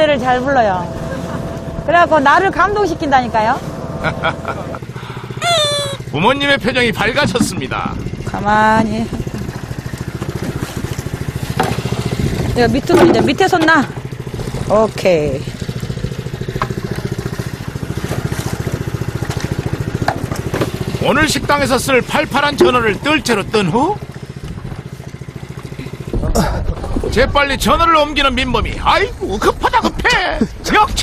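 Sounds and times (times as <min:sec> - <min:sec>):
boat engine pulsing: 0:00.0 - 0:31.0.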